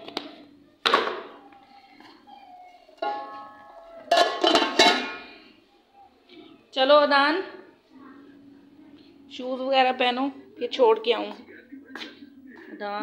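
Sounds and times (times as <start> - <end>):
cooking pot and lid clanging: 3.0 - 5.4.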